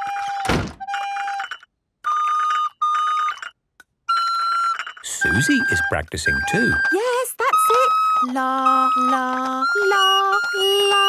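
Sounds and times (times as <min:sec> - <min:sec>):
harsh recorder squeak: 0:04.1 - 0:11.0
recorder notes: 0:04.4 - 0:11.0.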